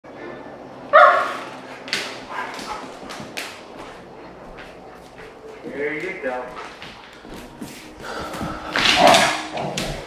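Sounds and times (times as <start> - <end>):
dog barking loudly: 0.9 - 1.5
dogs making sharp play sounds: 1.0 - 5.8, 8.7 - 10.0.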